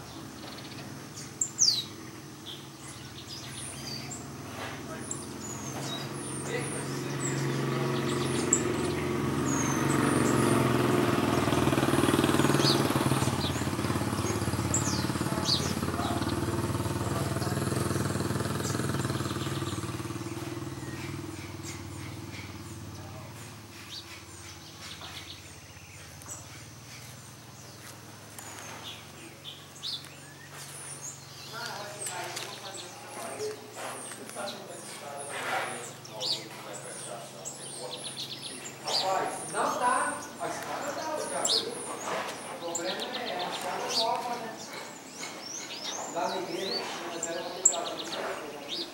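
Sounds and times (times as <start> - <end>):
motor vehicle passing: 0.0 - 48.9
small birds chirping: 0.0 - 48.9.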